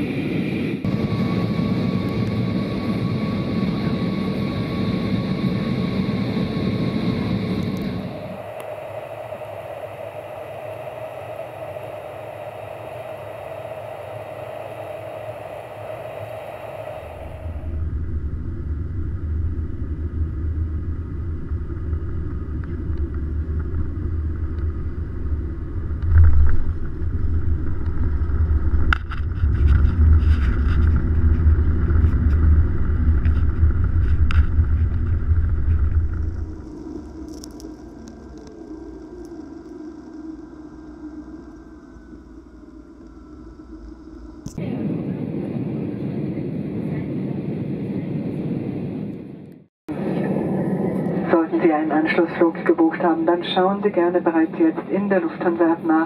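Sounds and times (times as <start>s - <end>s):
jet engine and airflow noise: 0.0s - 56.0s
jet rumbling on runway: 0.0s - 56.0s.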